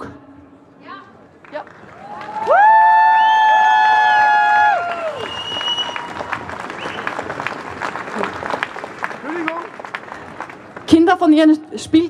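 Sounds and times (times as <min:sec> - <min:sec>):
crowd applauding: 0:01.4 - 0:11.2.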